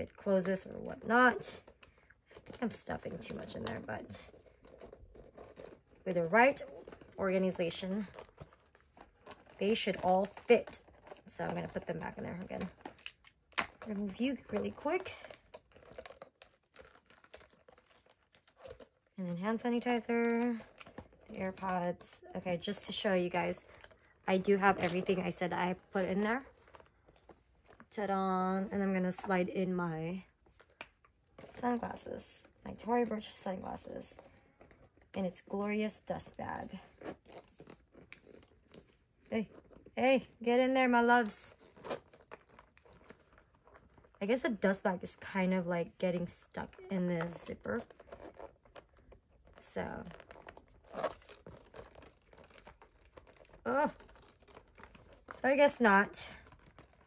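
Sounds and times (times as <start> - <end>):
small items clicking and rustling: 0.0 - 45.4, 46.3 - 57.0.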